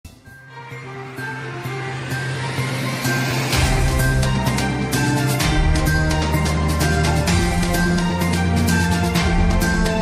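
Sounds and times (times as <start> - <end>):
television theme music: 0.1 - 10.0.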